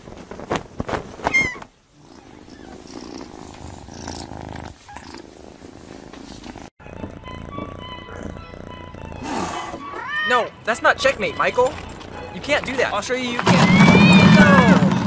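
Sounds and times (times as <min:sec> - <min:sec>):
kitten purring: 0:01.9 - 0:09.9
quiet music with held tones: 0:06.8 - 0:13.4.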